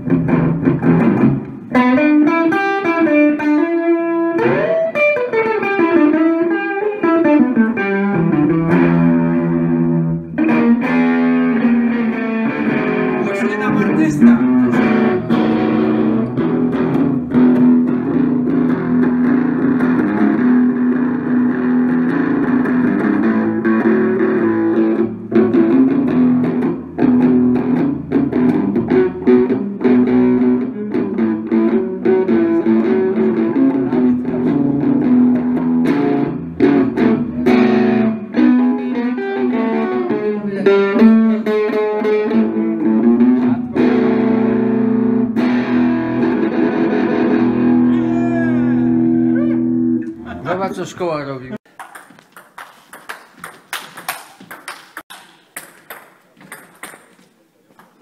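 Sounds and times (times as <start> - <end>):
electric guitar through amplifier: 0.0 - 50.4.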